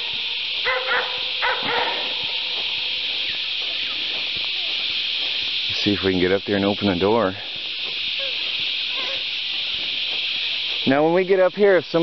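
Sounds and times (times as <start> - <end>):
high-pitched hiss: 0.0 - 12.0.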